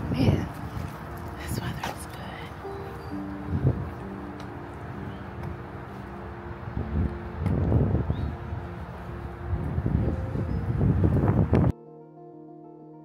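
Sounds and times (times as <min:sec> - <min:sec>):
wind buffeting microphone: 0:00.0 - 0:11.7
soft background music: 0:00.0 - 0:13.0.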